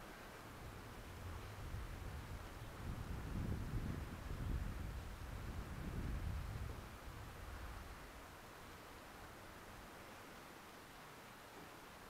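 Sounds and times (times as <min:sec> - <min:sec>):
wind rumble on microphone: 0:00.0 - 0:09.7.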